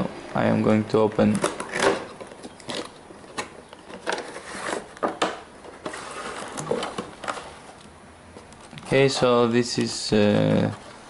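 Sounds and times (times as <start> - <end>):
cardboard and plastic packaging rustling: 1.1 - 11.0.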